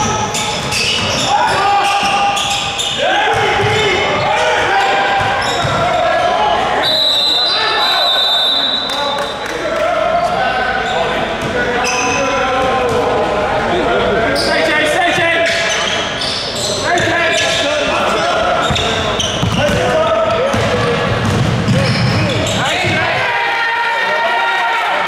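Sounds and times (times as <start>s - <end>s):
players' voices: 0.0s - 25.0s
basketball bouncing on court: 0.1s - 1.3s, 3.2s - 4.2s, 5.1s - 5.9s, 18.6s - 23.2s.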